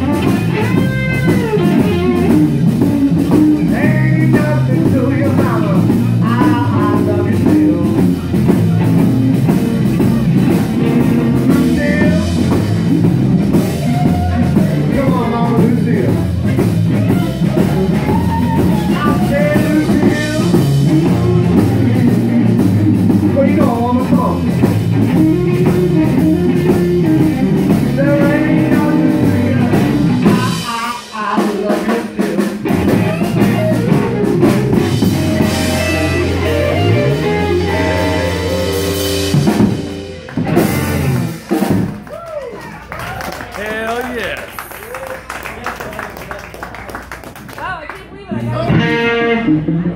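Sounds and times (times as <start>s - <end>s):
live rock band playing: 0.0s - 43.9s, 47.1s - 49.9s.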